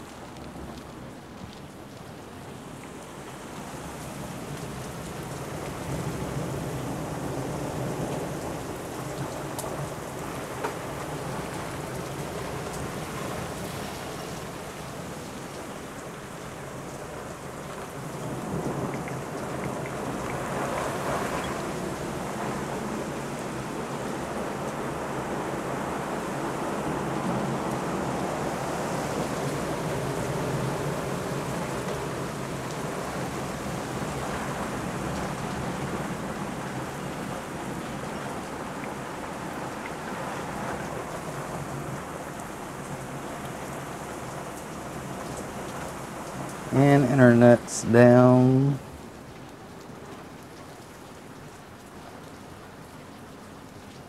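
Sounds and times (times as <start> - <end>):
heavy rain: 0.0 - 54.0
wind: 0.0 - 54.0.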